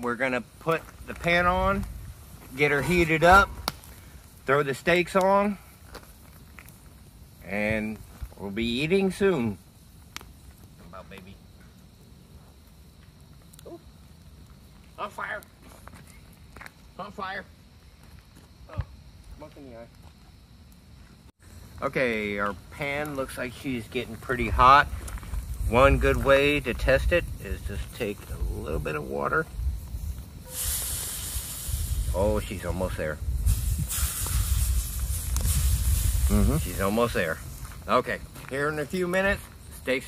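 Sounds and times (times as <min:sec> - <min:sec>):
campfire burning: 0:00.0 - 0:40.0
faint fire crackles: 0:00.0 - 0:40.0
water hissing on hot skillet: 0:00.3 - 0:10.8, 0:21.4 - 0:38.4.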